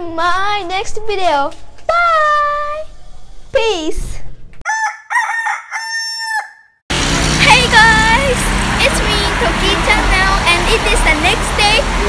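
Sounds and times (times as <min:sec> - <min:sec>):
rooster crowing: 0:04.7 - 0:06.8.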